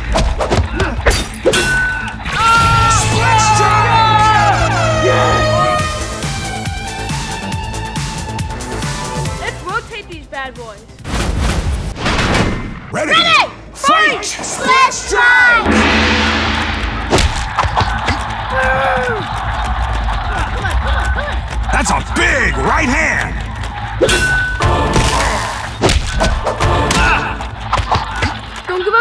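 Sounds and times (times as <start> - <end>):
background music: 0.0 - 11.9, 21.6 - 29.0
loud explosion-like blasts: 15.6 - 18.8.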